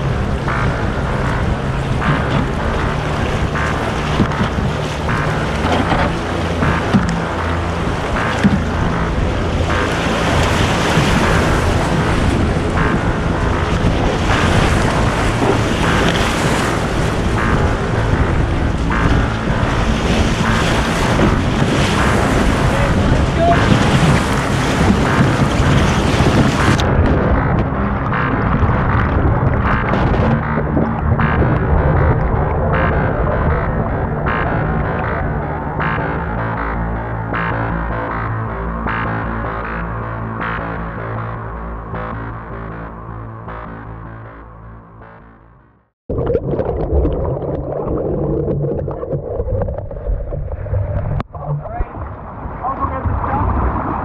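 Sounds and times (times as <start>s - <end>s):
whitewater rushing: 0.0s - 33.7s
wind on microphone: 0.0s - 37.7s
muffled churning water underwater: 0.0s - 54.0s.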